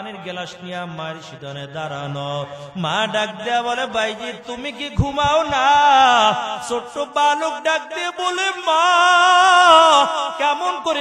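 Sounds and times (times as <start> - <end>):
man chanting through microphone: 0.0 - 11.0.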